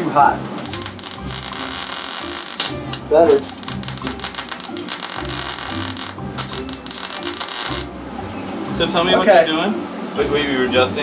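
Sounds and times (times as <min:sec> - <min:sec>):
welder arc crackling buzz: 0:00.6 - 0:07.9.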